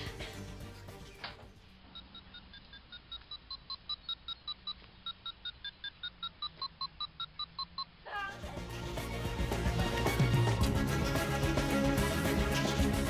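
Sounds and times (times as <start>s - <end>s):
electronic beeps tune: 1.9s - 8.0s.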